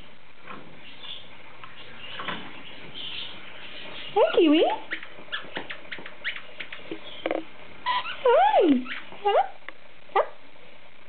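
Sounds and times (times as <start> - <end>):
lorikeet chirps and clicks: 4.0 - 9.4.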